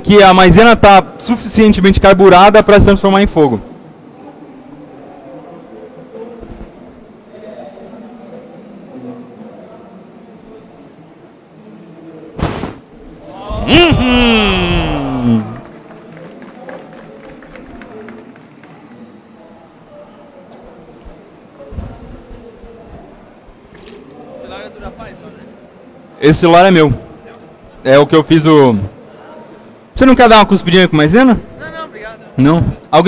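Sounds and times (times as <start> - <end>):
audience murmur: 3.8 - 26.2
person exclaiming ooh: 13.3 - 15.6.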